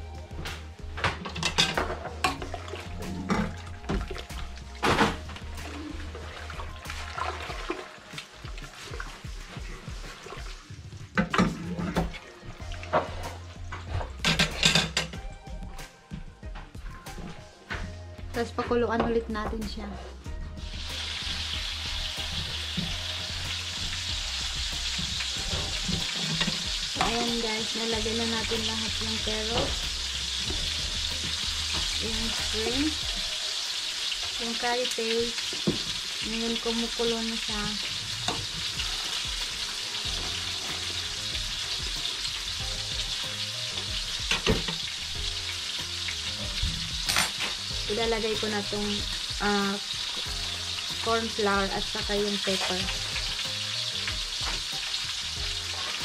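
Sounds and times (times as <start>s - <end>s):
soup sizzling in a pot: 0.0s - 15.2s, 20.1s - 56.0s
utensils knocking on pot: 1.0s - 4.1s, 14.2s - 15.2s.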